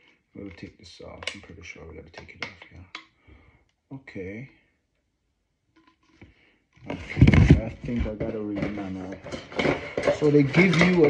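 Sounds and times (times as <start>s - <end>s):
plastic bottle parts clicking: 0.0s - 3.2s, 5.8s - 6.9s
person speaking: 0.3s - 3.0s, 3.9s - 4.7s, 6.9s - 9.3s, 10.0s - 11.0s.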